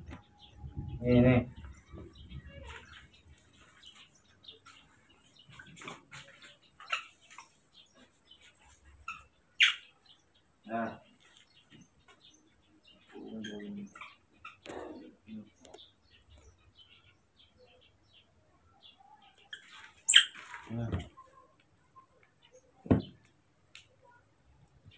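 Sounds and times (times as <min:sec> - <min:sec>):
baby monkeys squeaking and chirping: 0:09.0 - 0:10.0, 0:19.5 - 0:20.4.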